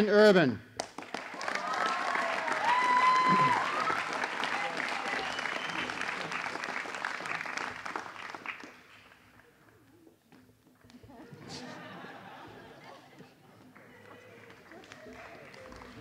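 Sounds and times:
audience applauding: 0.8 - 9.9, 11.5 - 16.0
voices cheering: 1.2 - 7.5.

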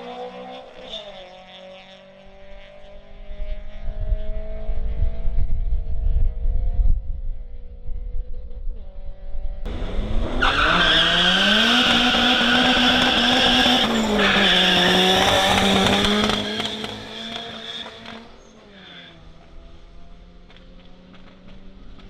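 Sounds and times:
car engine revving: 9.7 - 22.0
tyres squealing: 10.4 - 18.0.

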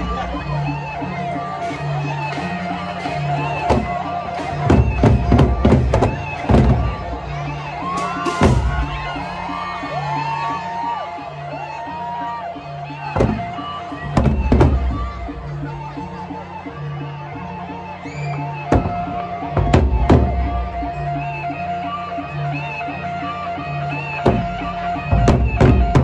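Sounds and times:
big drum gamelan ensemble: 0.0 - 26.0
large barrel drums struck: 4.6 - 7.0, 8.1 - 9.0, 13.2 - 13.5, 14.1 - 15.0, 18.7 - 20.6, 24.2 - 24.5, 25.1 - 26.0.

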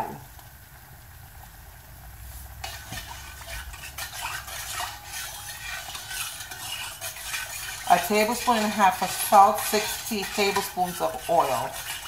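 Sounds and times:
spoon scraping metal pot: 2.6 - 12.0.

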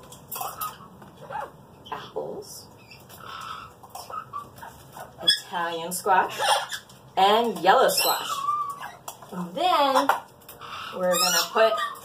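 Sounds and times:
parrot calls: 0.3 - 1.6, 2.8 - 5.6, 6.2 - 7.0, 7.8 - 12.0.

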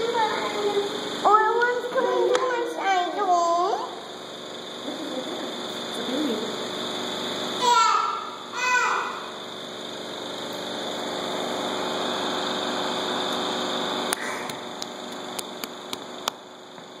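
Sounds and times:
mechanical hum: 0.0 - 17.0.

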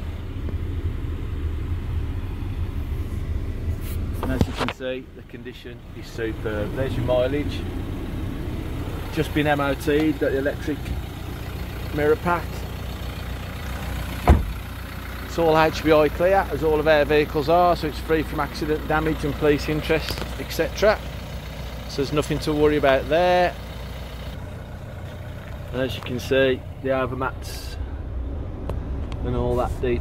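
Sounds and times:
diesel engine idling: 0.0 - 30.0
sharp thump: 14.2 - 14.6.

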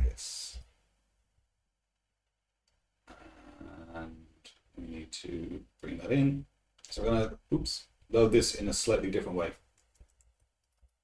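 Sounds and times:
man's voice: 0.0 - 0.6.

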